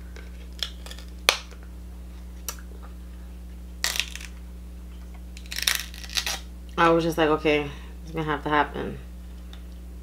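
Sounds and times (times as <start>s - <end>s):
crab shell cracking: 0.2s - 1.6s, 3.8s - 4.4s, 5.4s - 6.4s.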